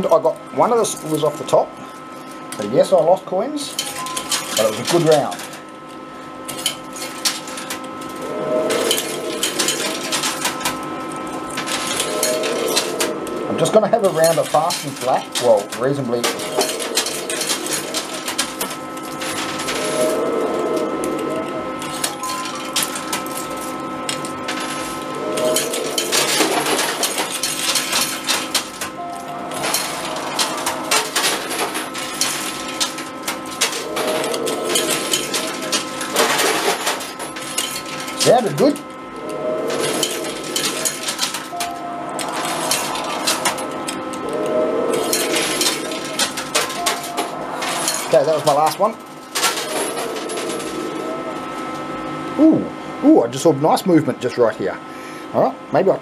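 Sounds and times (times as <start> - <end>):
din of arcade machines: 0.0 - 56.0
coins clinking and clattering: 6.5 - 10.8, 11.5 - 13.1, 14.2 - 38.8, 39.6 - 43.7, 44.9 - 48.7, 49.3 - 51.2.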